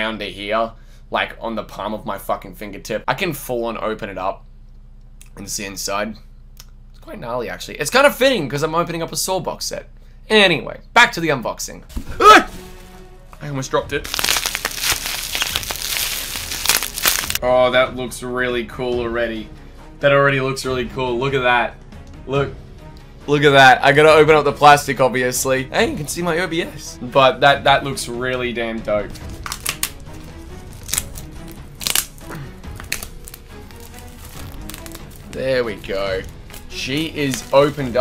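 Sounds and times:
faint background music: 0:00.0 - 0:04.6, 0:05.2 - 0:38.0
bubble wrap crackling: 0:14.0 - 0:17.4, 0:29.1 - 0:38.0.

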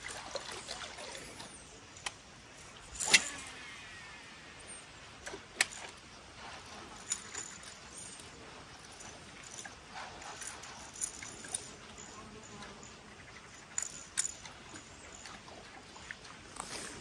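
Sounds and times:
fishing reel spool whirring: 0:03.0 - 0:04.7.

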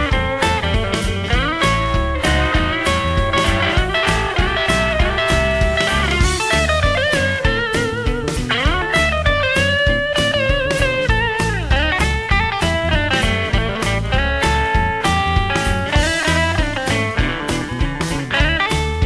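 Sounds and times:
electric guitar bending notes: 0:00.0 - 0:19.0
steady drum beat: 0:00.0 - 0:19.0.

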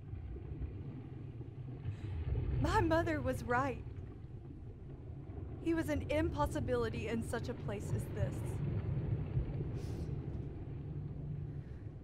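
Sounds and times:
low steady rumble: 0:00.0 - 0:12.0.

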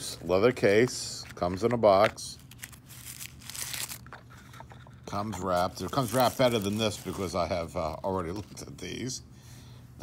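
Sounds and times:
tissue paper crinkling: 0:02.4 - 0:07.7.

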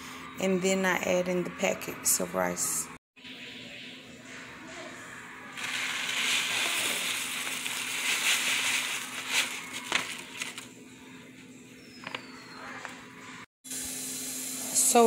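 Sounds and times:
dry grains pouring into pot: 0:05.6 - 0:10.2
plastic pouch crackling: 0:05.6 - 0:10.7.

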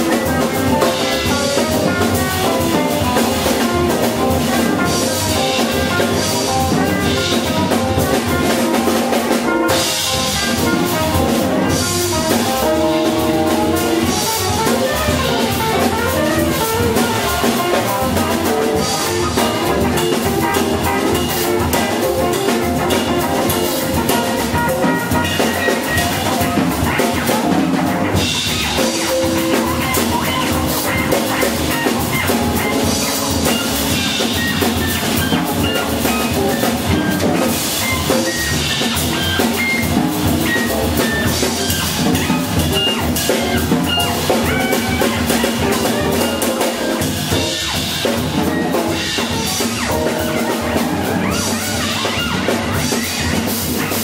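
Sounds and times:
drum kit: 0:00.0 - 0:54.0
electric guitar: 0:00.0 - 0:54.0
jazz combo playing: 0:00.0 - 0:54.0
upright double bass: 0:00.0 - 0:54.0.

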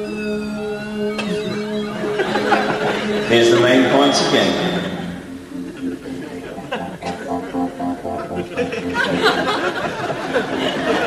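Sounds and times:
high tones sliding downward: 0:00.0 - 0:11.0
synthesizer low chord: 0:00.0 - 0:11.0.

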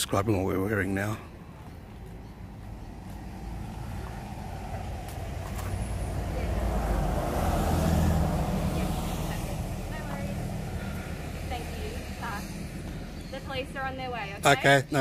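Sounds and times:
vehicle driving past: 0:02.3 - 0:14.2.

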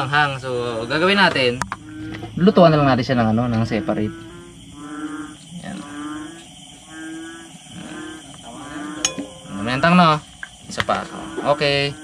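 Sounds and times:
animal calling low tone: 0:01.7 - 0:10.1.

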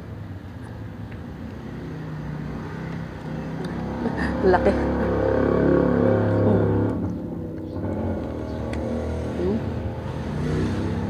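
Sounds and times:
vehicle engine running: 0:01.8 - 0:11.0.

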